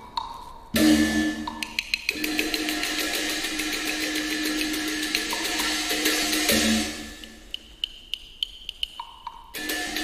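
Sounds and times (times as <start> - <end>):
sharp clicking percussion roll: 0.8 - 10.0.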